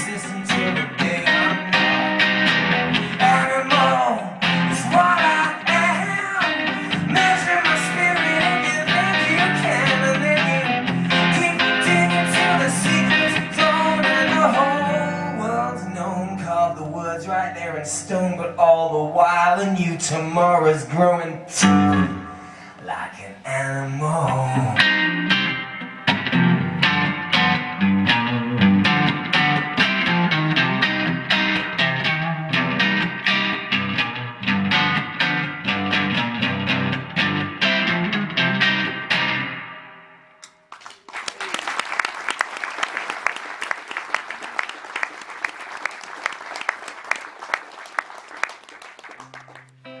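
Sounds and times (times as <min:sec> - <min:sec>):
strummed guitar: 0:00.0 - 0:40.4, 0:49.6 - 0:50.0
audience applause: 0:40.7 - 0:49.8.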